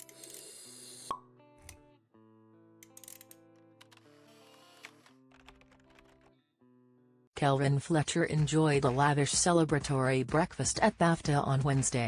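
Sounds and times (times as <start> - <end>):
quiet background music: 7.4 - 12.0.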